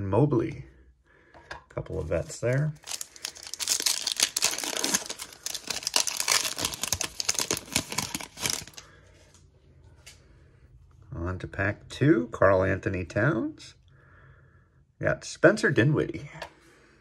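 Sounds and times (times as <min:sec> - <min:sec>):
foil wrapper tearing and crinkling: 0:02.3 - 0:08.8.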